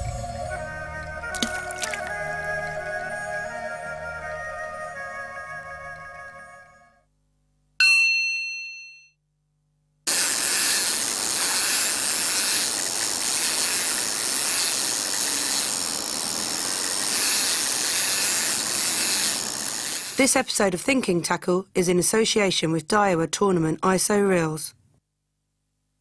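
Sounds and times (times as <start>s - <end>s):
steady rushing hiss: 10.1s - 20.3s.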